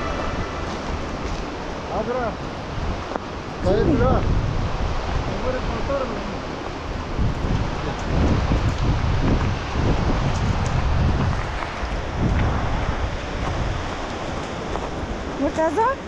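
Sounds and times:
mountain stream rushing: 0.0 - 16.0
wind gusting on microphone: 0.0 - 16.0.

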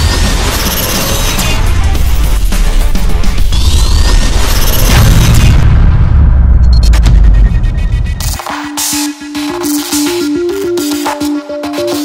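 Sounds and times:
music: 0.0 - 12.0
deep boom: 4.9 - 8.2.

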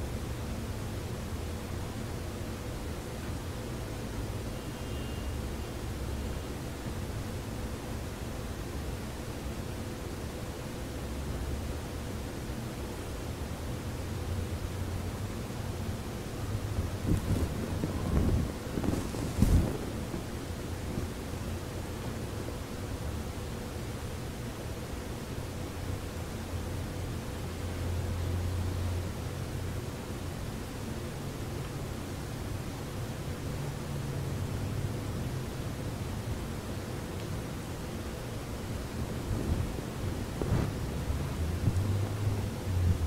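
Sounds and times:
faint steady hum: 0.0 - 43.0
room and microphone noise: 0.0 - 43.0
muffled bumps and rustles: 16.8 - 21.3, 39.0 - 43.0.

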